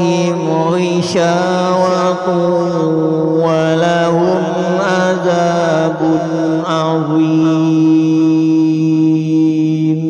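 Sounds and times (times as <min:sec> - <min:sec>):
person chanting melodic recitation: 0:00.0 - 0:10.0.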